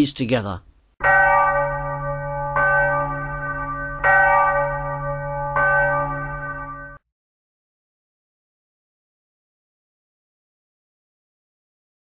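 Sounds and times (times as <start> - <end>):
bell tolling: 1.0 - 7.0.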